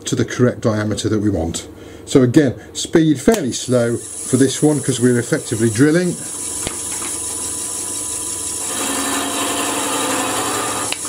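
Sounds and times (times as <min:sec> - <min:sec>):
lathe motor hum: 0:03.6 - 0:11.0.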